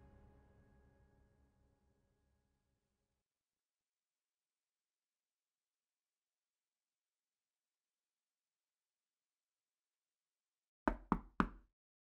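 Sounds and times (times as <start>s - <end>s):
knocks on a door: 10.9s - 11.7s.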